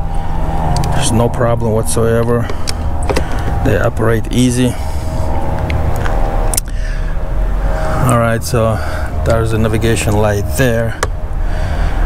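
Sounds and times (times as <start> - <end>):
faint steady hum: 0.0 - 12.0
steady low rumble: 0.0 - 12.0.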